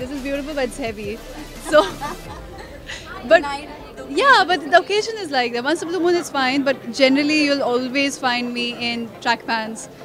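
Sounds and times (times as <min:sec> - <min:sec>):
woman speaking: 0:00.0 - 0:09.7.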